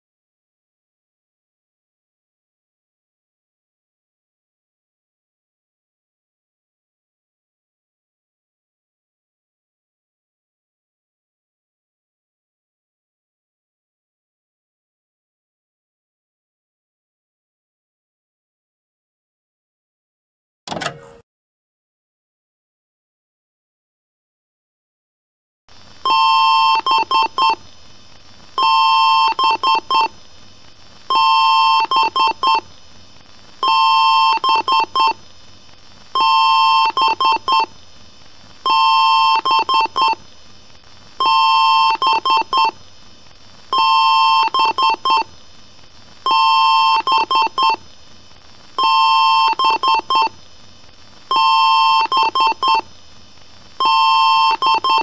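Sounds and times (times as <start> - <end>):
low steady hiss: 25.7 - 55.0.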